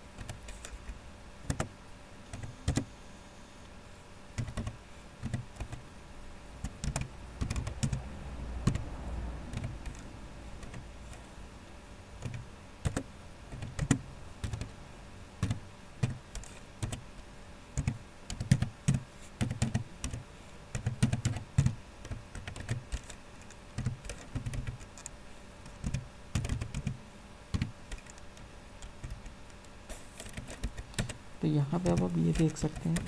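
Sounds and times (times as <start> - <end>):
typing on a keyboard: 0.2 - 0.8, 1.4 - 1.7, 2.3 - 2.9, 4.4 - 5.8, 6.6 - 8.9, 9.5 - 10.0, 10.6 - 11.2, 12.2 - 14.7, 15.4 - 17.0, 17.8 - 29.3, 30.2 - 33.0.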